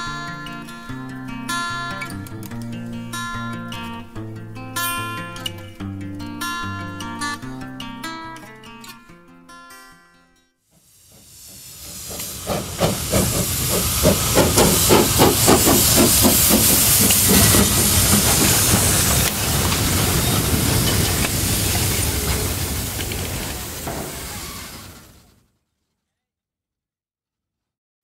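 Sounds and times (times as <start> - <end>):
steam hiss: 10.8 - 25.3
steam locomotive exhaust chuffs: 10.8 - 25.3.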